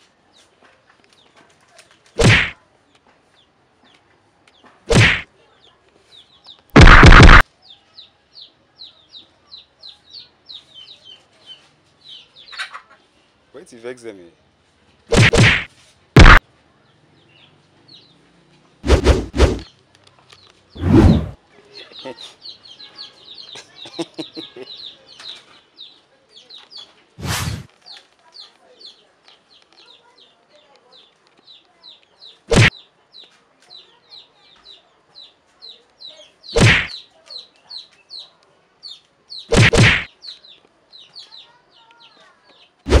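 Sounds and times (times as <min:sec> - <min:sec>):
loud whacking noises: 0:02.2 - 0:02.6, 0:04.9 - 0:05.3, 0:06.8 - 0:07.4, 0:15.1 - 0:16.4, 0:18.8 - 0:19.7, 0:20.8 - 0:21.4, 0:27.2 - 0:27.7, 0:32.5 - 0:32.7, 0:36.6 - 0:37.0, 0:39.5 - 0:40.1
chickens peeping: 0:06.0 - 0:13.3.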